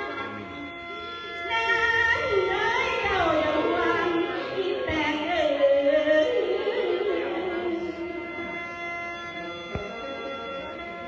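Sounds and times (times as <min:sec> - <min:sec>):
mouth organ sustained chord: 0:00.0 - 0:11.0.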